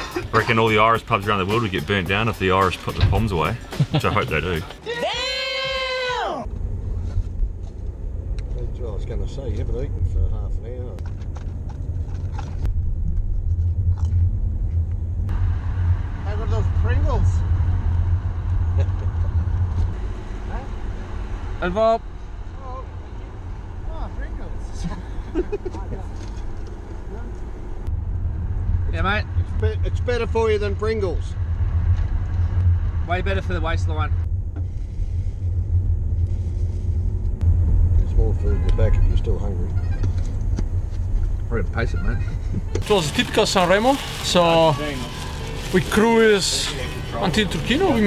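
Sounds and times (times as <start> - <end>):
car cabin road rumble: 0.0 - 48.0.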